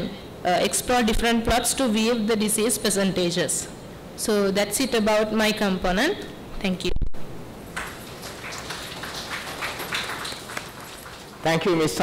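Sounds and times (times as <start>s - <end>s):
people clapping unevenly: 7.7s - 12.0s.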